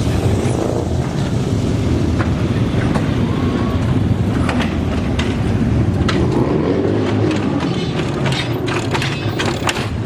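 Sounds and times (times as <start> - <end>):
engines rumbling: 0.0 - 10.0
metallic clanks and rattles: 4.3 - 10.0.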